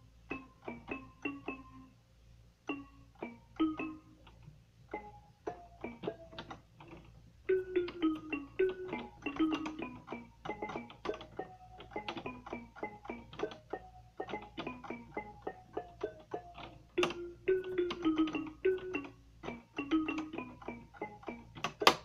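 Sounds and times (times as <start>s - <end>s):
electronic keyboard melody: 0.0s - 2.0s, 2.6s - 22.0s.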